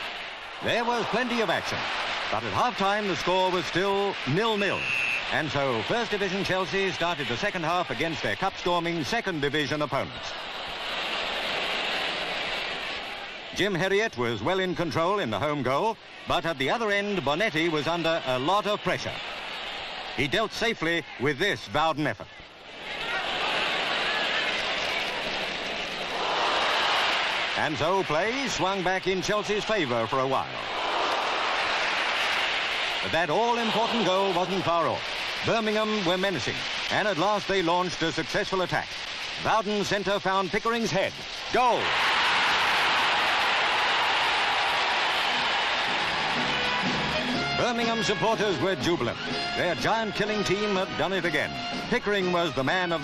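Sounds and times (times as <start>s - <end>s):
newsreel music: 0.0s - 10.1s, 33.0s - 41.8s, 44.4s - 53.0s
large football crowd: 0.0s - 53.0s.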